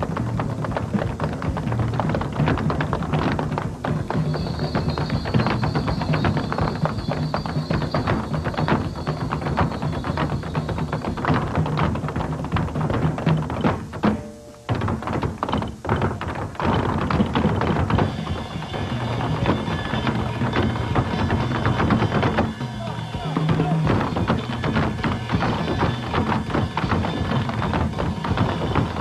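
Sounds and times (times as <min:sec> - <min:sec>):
tap shoes on wooden floor: 0:00.0 - 0:29.0.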